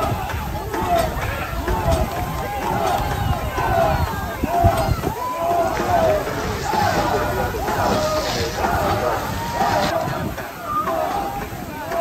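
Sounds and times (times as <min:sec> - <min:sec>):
crew shouting in cadence: 0:00.0 - 0:12.0.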